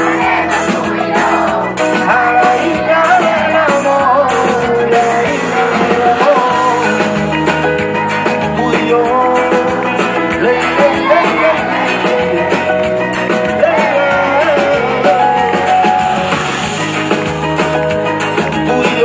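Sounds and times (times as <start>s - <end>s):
man singing with live band: 0.0s - 7.4s, 8.2s - 16.2s, 18.5s - 19.0s
drums and backing instruments: 0.0s - 19.0s.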